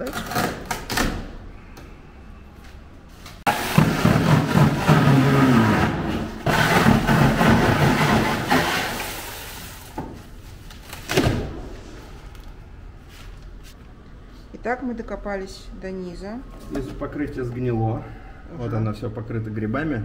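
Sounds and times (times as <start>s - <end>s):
foam scraping and crumbling: 3.5s - 10.6s.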